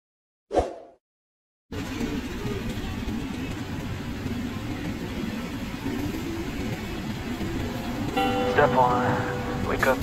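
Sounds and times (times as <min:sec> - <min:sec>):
car engine and road noise: 0:01.7 - 0:10.0.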